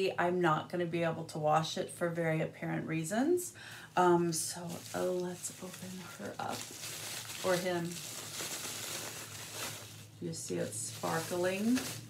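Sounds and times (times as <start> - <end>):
bubble wrap crinkling: 4.2 - 12.0.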